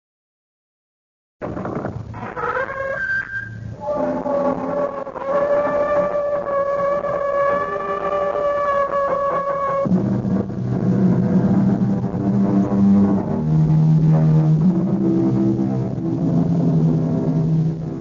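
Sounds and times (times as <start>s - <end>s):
door creaking: 1.4s - 10.1s
low sustained tones: 3.0s - 18.0s.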